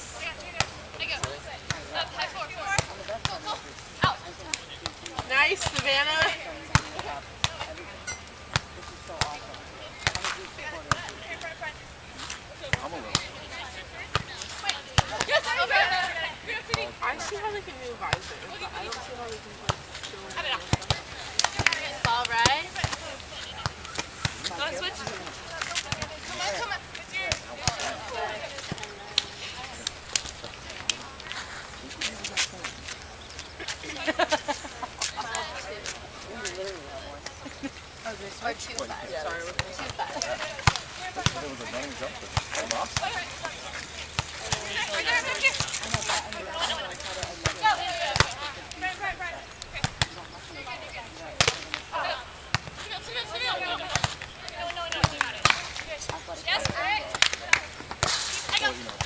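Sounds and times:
players calling and shouting: 0.0s - 59.0s
hands slapping a volleyball: 20.7s - 24.4s, 39.5s - 41.4s, 51.4s - 51.8s, 53.9s - 59.0s.

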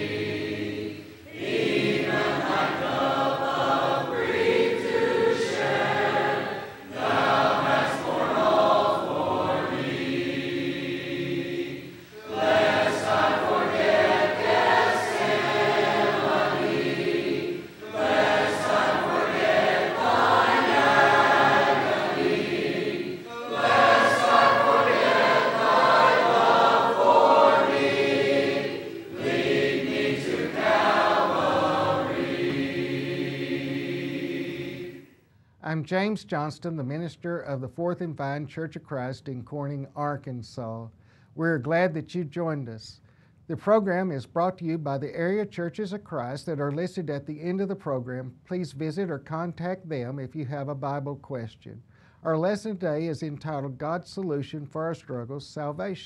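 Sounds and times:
choir singing a hymn: 0.0s - 35.1s.

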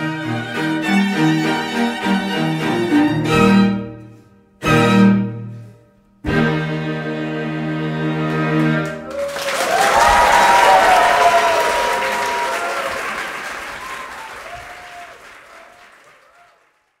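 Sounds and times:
audience applauding and cheering: 8.6s - 17.0s.

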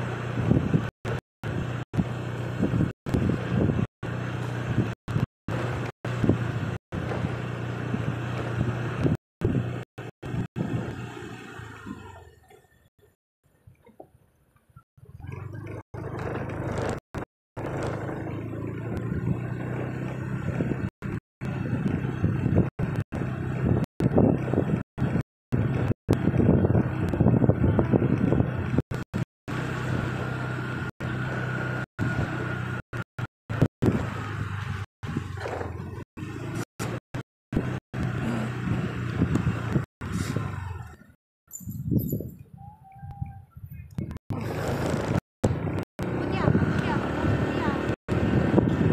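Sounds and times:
car engine running: 0.0s - 12.4s, 15.0s - 41.2s, 44.0s - 48.9s
low rumbling vehicle noise: 0.0s - 48.9s.

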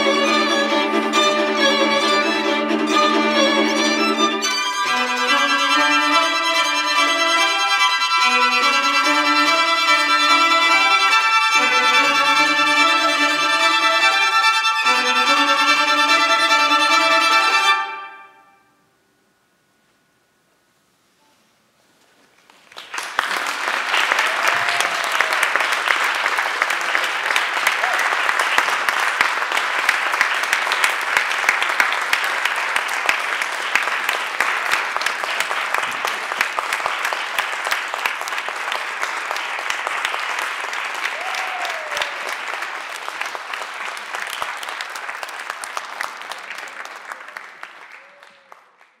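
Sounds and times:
audience applauding: 22.4s - 49.0s.

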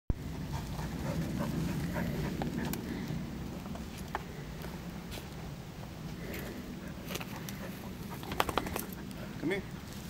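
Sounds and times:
steady low rumble: 0.2s - 10.0s.

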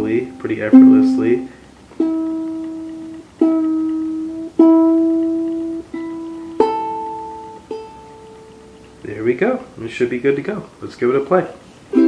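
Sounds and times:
ukulele strings plucked: 0.0s - 9.0s.

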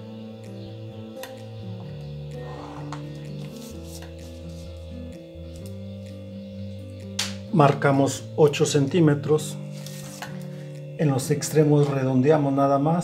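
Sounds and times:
slow sustained background music: 0.0s - 13.0s.

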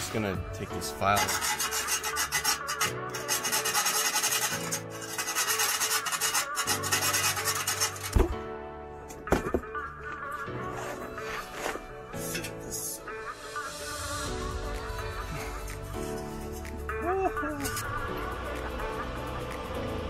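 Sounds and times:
background music: 0.0s - 20.0s
file rasping on metal pipe: 1.0s - 8.2s.

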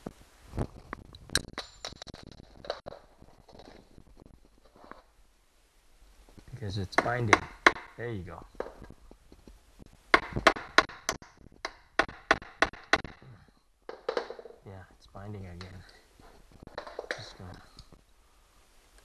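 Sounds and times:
small hammer tapping metal: 7.0s - 8.0s.

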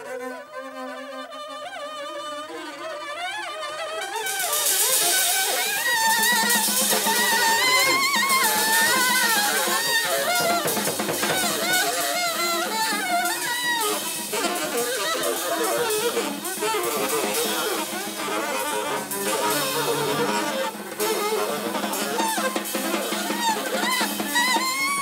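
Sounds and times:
saxophone wailing: 0.0s - 25.0s
drum kit and cymbals: 4.1s - 25.0s.

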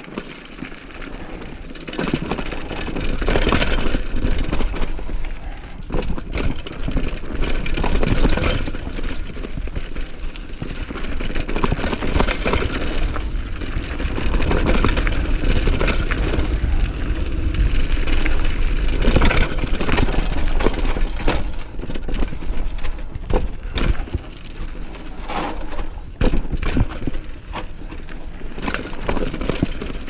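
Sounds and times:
bike clattering over bumps: 0.0s - 30.0s
bike tyres rolling over dirt: 0.0s - 30.0s
wind rumble on microphone: 2.6s - 28.6s.

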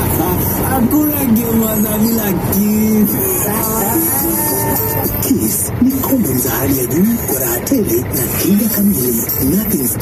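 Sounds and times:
radio voice singing gliding notes: 0.0s - 10.0s
vehicle engine and road noise: 0.0s - 10.0s.

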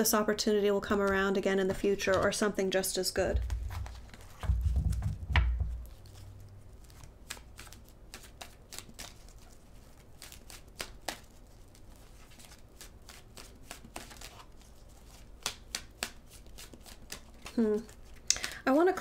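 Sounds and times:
cards being shuffled: 0.9s - 2.6s, 3.3s - 18.6s.

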